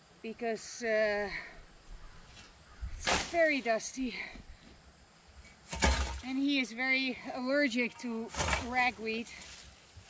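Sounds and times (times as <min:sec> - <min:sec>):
scythe blade swishing through weeds: 0:03.0 - 0:03.7.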